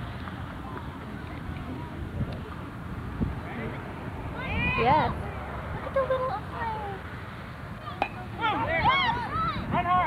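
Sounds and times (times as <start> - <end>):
voices shouting and cheering: 3.3 - 10.0
bat hitting ball: 8.0 - 8.4.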